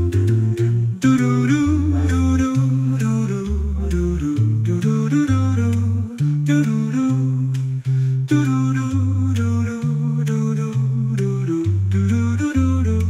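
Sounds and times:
a cappella voices humming: 0.0s - 13.0s
low bass voice: 0.0s - 13.0s.

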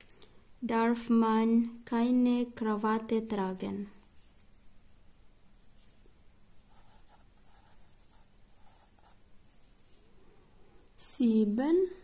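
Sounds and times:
pencil scratching on paper: 6.7s - 9.2s.

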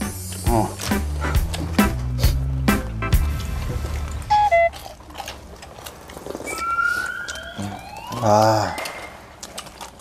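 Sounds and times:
cartoon beeps: 4.3s - 4.8s, 6.5s - 9.2s
rising whistle-like glides: 6.5s - 8.2s.

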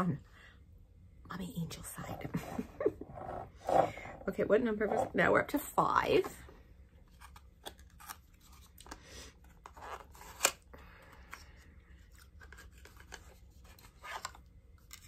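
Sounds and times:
faint scrapes and rubs: 2.2s - 5.3s.

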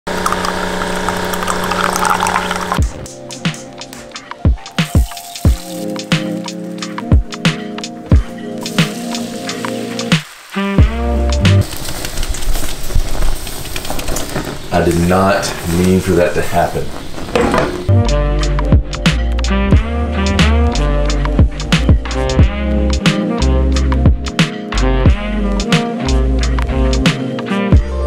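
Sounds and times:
coffee pouring into mug: 0.1s - 2.9s
kettle steam hissing: 0.1s - 2.9s, 8.1s - 10.8s, 11.6s - 17.0s
coffee machine pump humming: 0.1s - 3.0s.

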